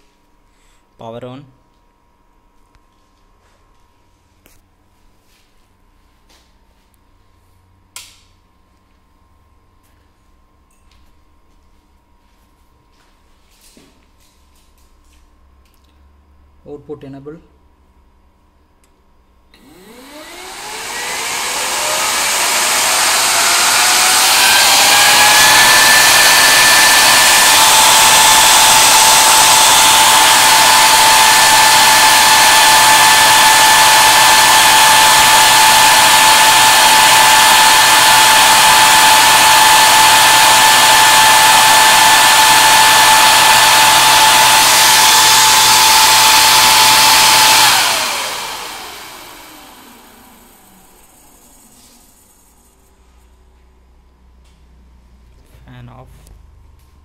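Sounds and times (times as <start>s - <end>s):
cooling fan whine: 0.0s - 57.0s.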